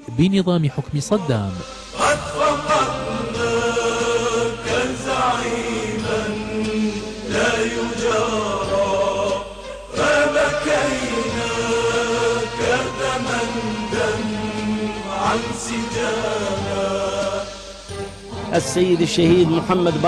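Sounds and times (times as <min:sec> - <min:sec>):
religious vocal chanting: 0:00.0 - 0:20.0.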